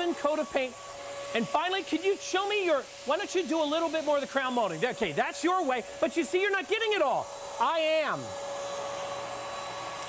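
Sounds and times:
hiss of spraying paint: 0.0s - 10.0s
paint sprayer motor hum: 0.0s - 10.0s.

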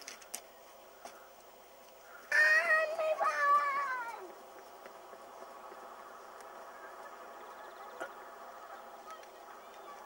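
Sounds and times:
child shouting: 2.3s - 4.3s.

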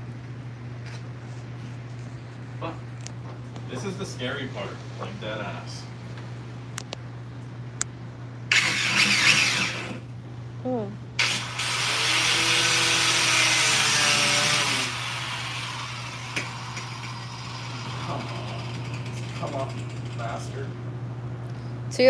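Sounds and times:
angle grinder cutting metal: 8.5s - 10.0s, 11.2s - 19.2s.

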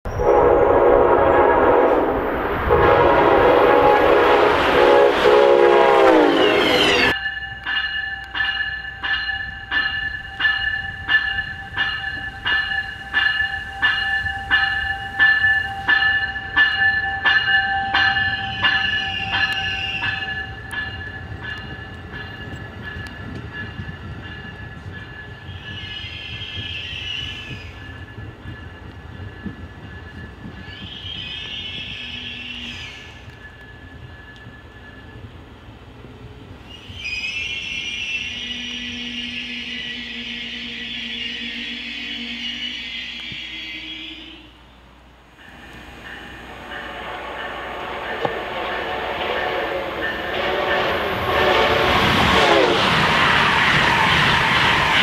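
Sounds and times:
train rolling noise: 0.0s - 55.0s
locomotive air horn blasts: 0.1s - 7.1s, 46.5s - 53.0s
faint train whine: 0.1s - 55.0s
train bell ringing: 3.3s - 35.6s, 45.4s - 55.0s.

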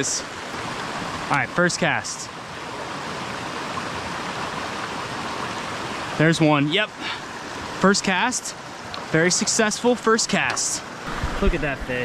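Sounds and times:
brook water rushing: 0.0s - 12.0s.

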